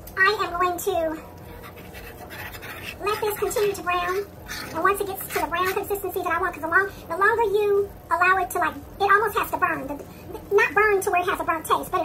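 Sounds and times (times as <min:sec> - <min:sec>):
spoon scraping a skillet: 0:01.6 - 0:06.0.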